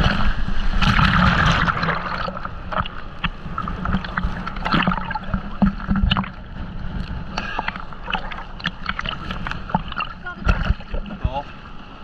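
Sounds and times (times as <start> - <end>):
sea water sloshing and splashing: 0.0 - 12.0
water ticks and bubble pops: 0.8 - 6.4, 7.0 - 11.4.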